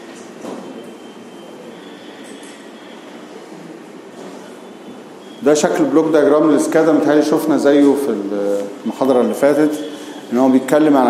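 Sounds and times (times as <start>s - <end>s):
lecture room background noise: 0.0s - 11.0s.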